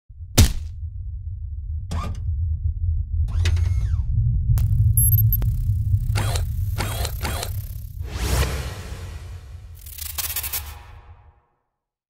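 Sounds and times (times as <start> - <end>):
steady low rumble: 0.1 - 9.9
mechanical rasping bursts: 5.9 - 8.0.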